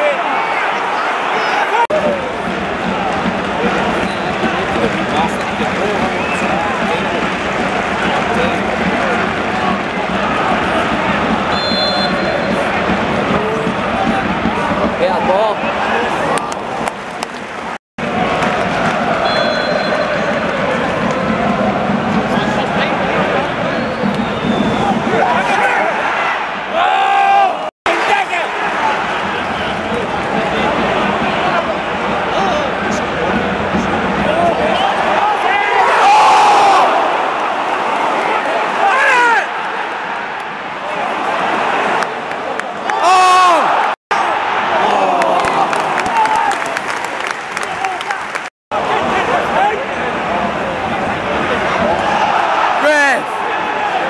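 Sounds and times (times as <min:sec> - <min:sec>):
stadium crowd singing and chanting: 0:01.9 - 0:16.8, 0:18.0 - 0:26.8.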